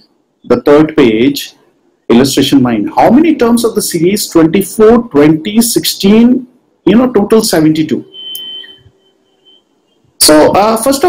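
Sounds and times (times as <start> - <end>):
high-pitched electronic tone: 8.0 - 10.0.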